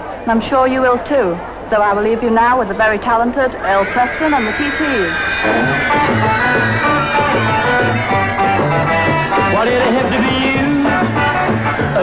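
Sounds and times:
repeating bass line: 0:05.1 - 0:12.0
electric guitar: 0:05.2 - 0:12.0.

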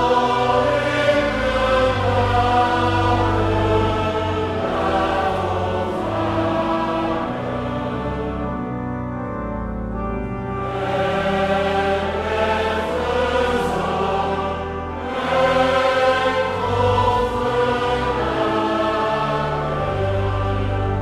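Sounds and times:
congregation singing a psalm: 0:00.0 - 0:21.0
organ accompaniment: 0:00.0 - 0:21.0.

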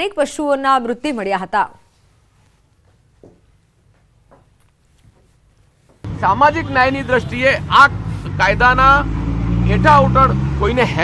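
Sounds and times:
man speaking: 0:06.1 - 0:09.1, 0:09.7 - 0:11.0.

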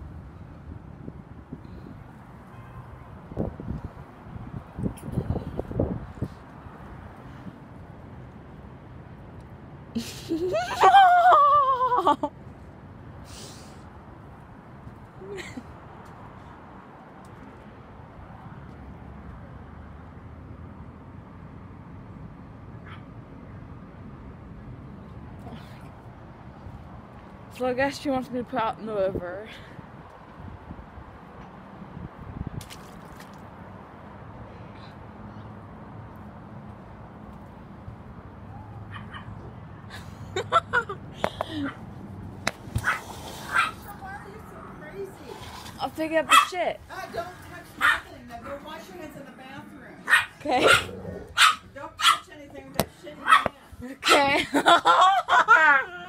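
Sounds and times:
wind on microphone: 0:03.2 - 0:06.8
dog barking: 0:42.8 - 0:43.8, 0:46.3 - 0:46.5, 0:47.8 - 0:48.1, 0:50.0 - 0:52.3, 0:53.2 - 0:54.2.

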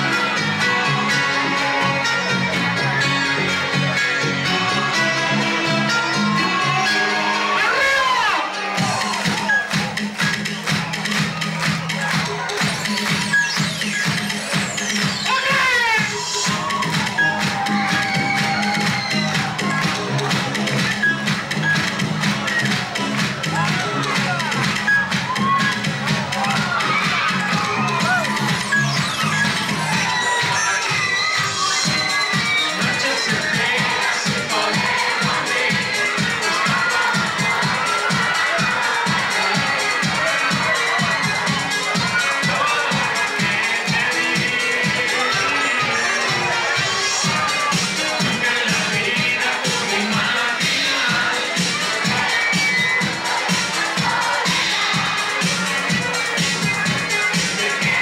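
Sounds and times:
crowd cheering and shouting: 0:00.0 - 0:58.0
synth-pop music over sound system: 0:00.0 - 0:58.0.

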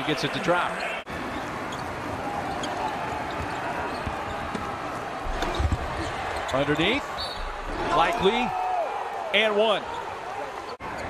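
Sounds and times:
arena noise: 0:00.0 - 0:11.0.

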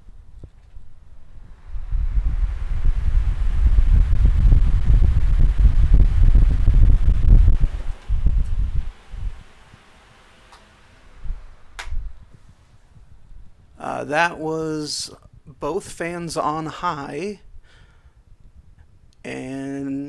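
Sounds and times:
wind noise on microphone: 0:00.0 - 0:09.8, 0:11.1 - 0:14.0, 0:17.4 - 0:19.2.

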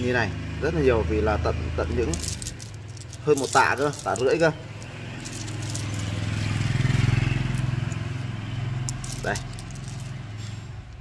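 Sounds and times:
vehicle engine passing: 0:00.1 - 0:11.0.

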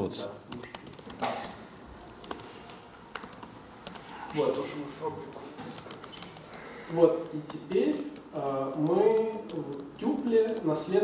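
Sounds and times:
computer keyboard typing: 0:00.4 - 0:11.0.

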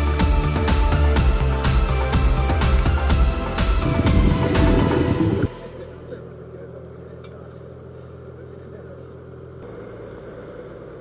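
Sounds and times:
boat engine idling: 0:00.3 - 0:11.0.

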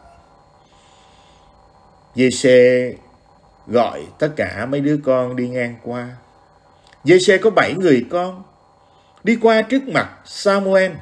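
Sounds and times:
faint room noise: 0:00.0 - 0:11.0
person breathing in: 0:00.6 - 0:01.6.

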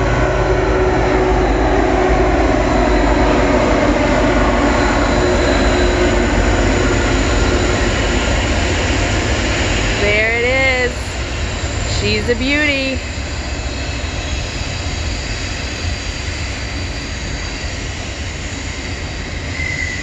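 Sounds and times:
diesel locomotive passing: 0:00.0 - 0:20.0.

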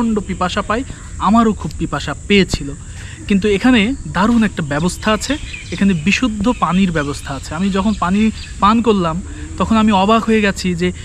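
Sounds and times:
faint high-pitched hum: 0:00.0 - 0:11.0
man talking: 0:00.0 - 0:11.0.

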